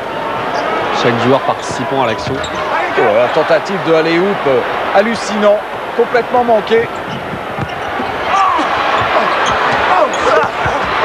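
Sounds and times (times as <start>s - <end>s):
arena crowd noise: 0.0s - 11.0s
basketball dribbled on hardwood: 7.0s - 8.2s.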